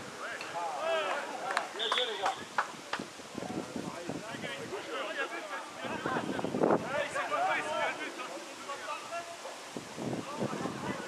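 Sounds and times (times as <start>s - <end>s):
footballers shouting: 0.2s - 2.6s, 4.8s - 9.6s
referee's whistle blast: 1.8s - 2.4s.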